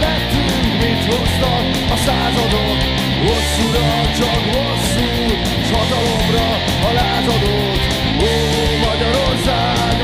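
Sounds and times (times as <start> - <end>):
distorted electric guitar: 0.0 - 10.0
drums: 0.0 - 10.0.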